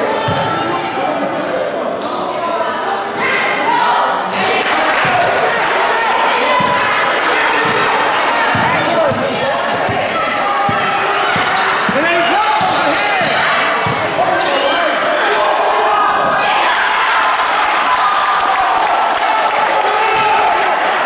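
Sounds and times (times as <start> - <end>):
basketball bouncing on hardwood: 8.5 - 10.1.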